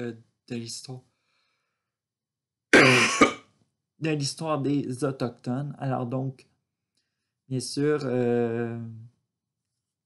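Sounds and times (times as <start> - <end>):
man coughing: 2.7 - 3.5.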